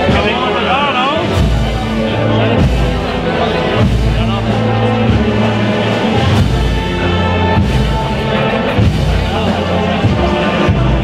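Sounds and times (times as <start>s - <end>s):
brass band playing a march: 0.0s - 11.0s.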